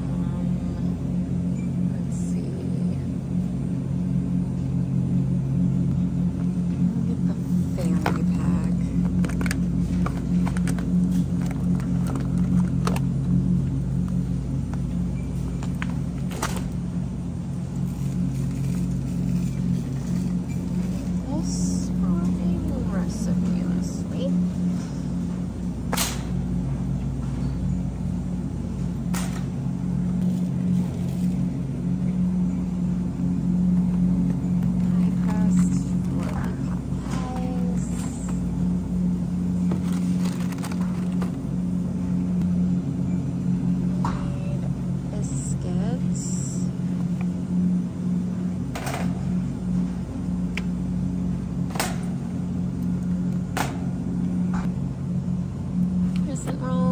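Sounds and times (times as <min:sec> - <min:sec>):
refrigerator low hum: 0:00.0 - 0:56.9.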